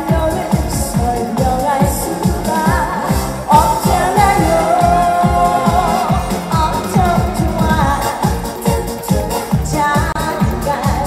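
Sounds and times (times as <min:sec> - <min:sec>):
fast dance beat: 0:00.0 - 0:11.0
woman singing into a microphone: 0:00.0 - 0:11.0.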